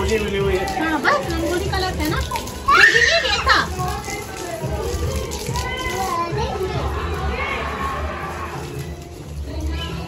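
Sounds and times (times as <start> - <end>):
people talking: 0.0 - 8.2
faint music: 0.0 - 10.0
young child playing and talking: 2.2 - 4.3, 5.3 - 7.0.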